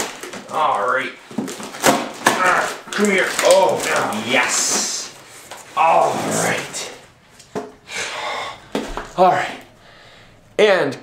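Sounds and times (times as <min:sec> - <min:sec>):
cardboard rustling: 0:00.0 - 0:07.7.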